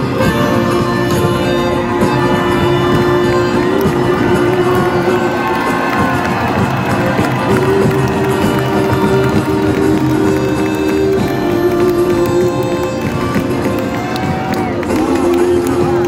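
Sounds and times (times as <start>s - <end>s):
acoustic band playing: 0.0s - 16.0s
arena crowd noise: 0.0s - 16.0s.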